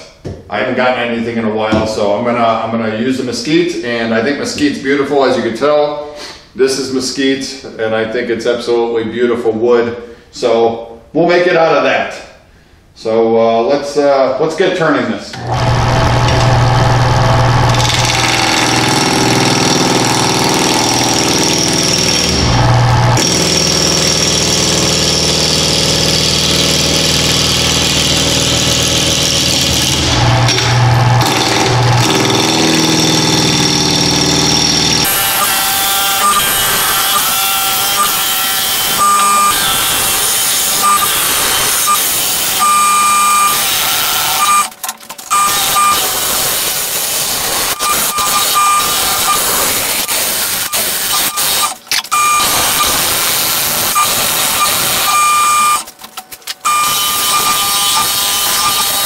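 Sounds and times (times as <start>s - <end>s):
wood lathe cutting: 15.4s - 55.9s, 56.6s - 59.0s
short high tones: 38.9s - 39.9s, 40.8s - 44.7s, 45.3s - 46.2s, 47.5s - 53.0s, 53.9s - 55.9s, 56.6s - 59.0s.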